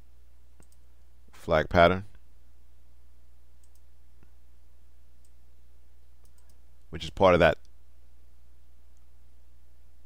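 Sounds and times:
steady low hum: 0.0 - 10.0
faint mouse clicks: 0.6 - 0.9, 3.6 - 4.4, 5.2 - 5.4, 6.2 - 6.9, 8.9 - 9.1.

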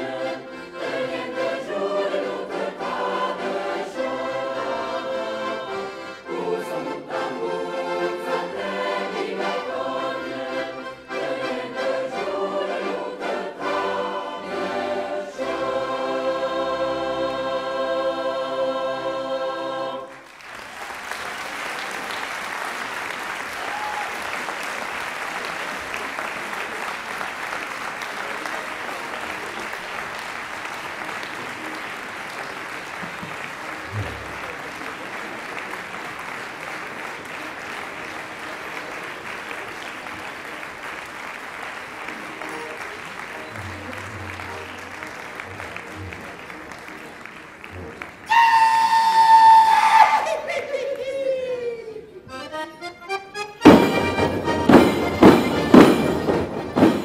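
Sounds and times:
accordion playing: 0.0 - 20.1, 36.8 - 48.6, 52.2 - 57.0
audience applauding: 20.0 - 52.2.

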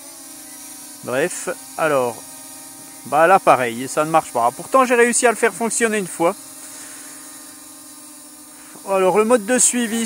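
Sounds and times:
drone propellers humming: 0.0 - 10.0.

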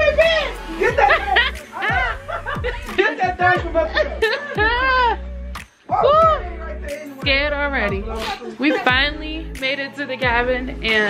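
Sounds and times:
woman laughing heartily: 0.8 - 5.3.

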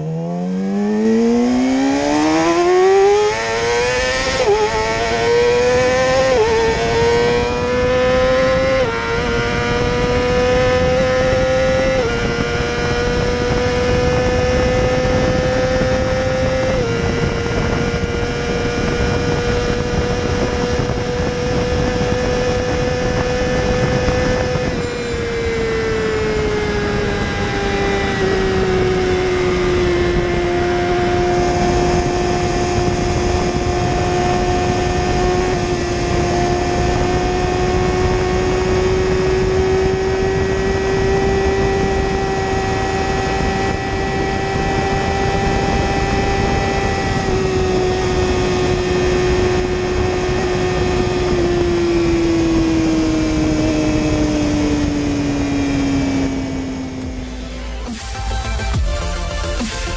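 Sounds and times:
motorcycle engine at full throttle: 0.0 - 59.9
wind rush: 0.0 - 59.9.

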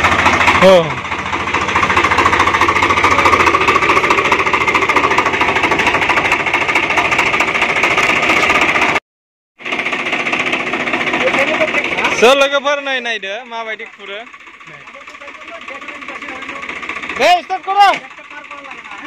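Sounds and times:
chain trencher rattling: 0.0 - 9.0, 9.6 - 19.0
tractor diesel engine running: 0.0 - 9.0, 9.6 - 19.0.

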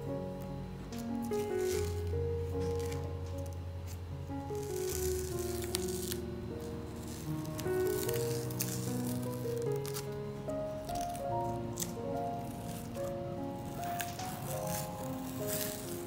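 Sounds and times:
background music held notes: 0.0 - 16.0
masking tape peeling crackles: 0.0 - 16.0.

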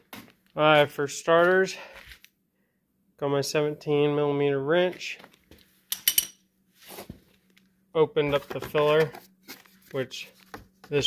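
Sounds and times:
socket wrench clinking: 5.9 - 6.4.

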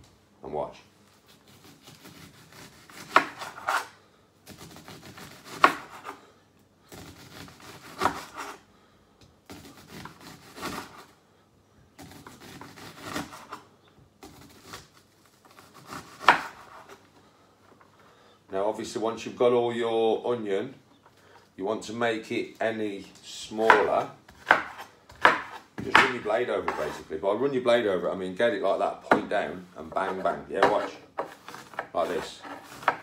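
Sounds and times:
knife slicing onion: 1.3 - 6.2, 6.9 - 8.6, 9.5 - 11.1, 12.0 - 13.6, 14.2 - 17.0, 23.6 - 27.1, 29.9 - 33.0.

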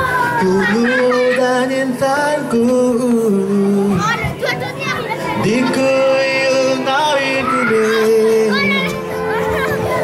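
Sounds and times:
acoustic guitar: 0.0 - 10.0
drums: 0.0 - 10.0
keyboards: 0.0 - 10.0
person singing: 5.4 - 9.3.

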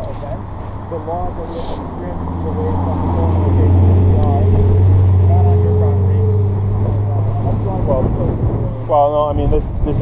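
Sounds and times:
wind buffeting microphone: 2.1 - 10.0.

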